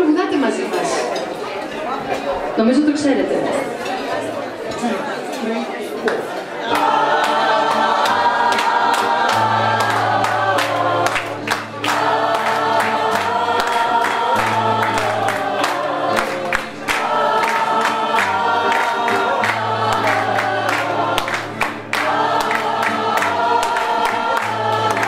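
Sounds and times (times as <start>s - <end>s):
rhythmic hand clapping: 6.0s - 25.0s
women's choir singing: 6.4s - 25.0s
guitar accompaniment: 6.6s - 25.0s.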